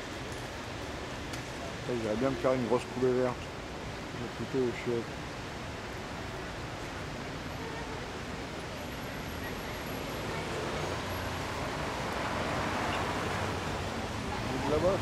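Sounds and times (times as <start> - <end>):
street traffic hum: 0.0 - 15.0
car passing by: 9.9 - 15.0.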